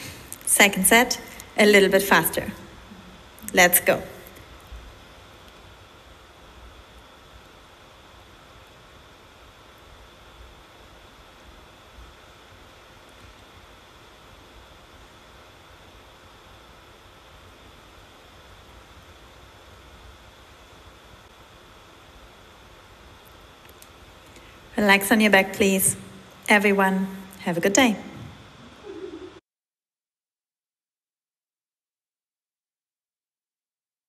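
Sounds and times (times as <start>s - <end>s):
faint room noise hiss: 0.0s - 29.4s.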